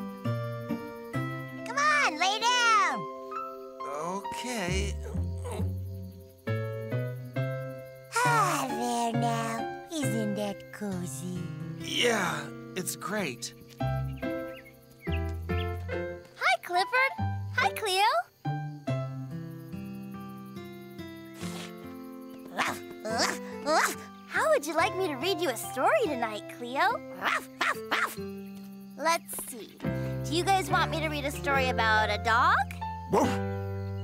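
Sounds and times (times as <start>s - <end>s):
soft background music: 0.0s - 34.0s
soft background score: 0.0s - 34.0s
high vocal sound: 3.9s - 5.8s, 8.1s - 9.6s, 11.9s - 12.5s
deep cartoon dog grunt: 33.1s - 33.5s.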